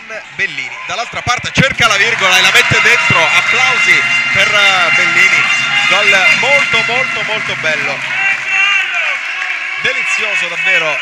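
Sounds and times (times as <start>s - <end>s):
man commentating: 0.0s - 11.0s
sports hall background noise: 0.0s - 11.0s.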